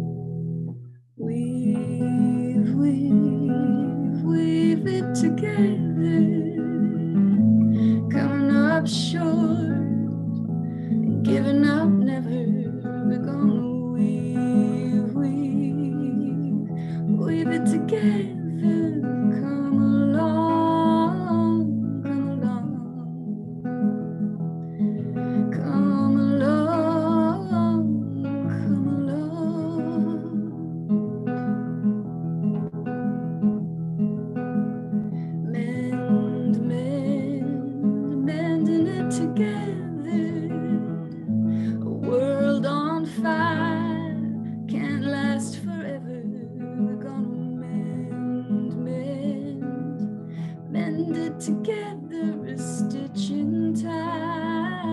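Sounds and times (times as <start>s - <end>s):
strummed acoustic guitar: 0.0s - 54.9s
woman singing: 1.2s - 24.1s, 25.0s - 31.1s, 35.2s - 54.9s.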